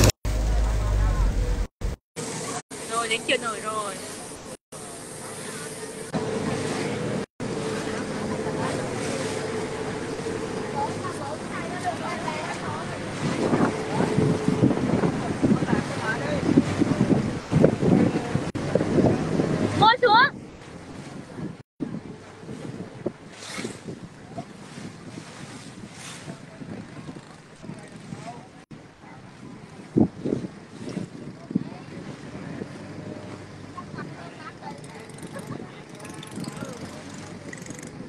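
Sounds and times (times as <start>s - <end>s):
boat motor running: 0.0s - 38.0s
water noise: 0.0s - 38.0s
wind buffeting microphone: 6.0s - 38.0s.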